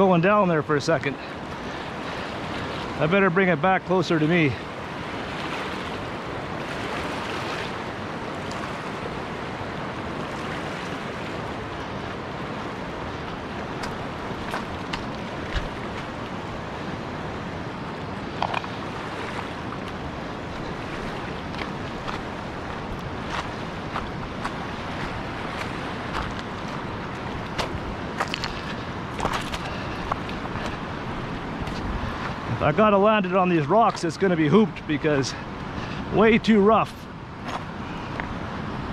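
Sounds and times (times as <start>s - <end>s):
river rushing over stones: 0.0s - 38.9s.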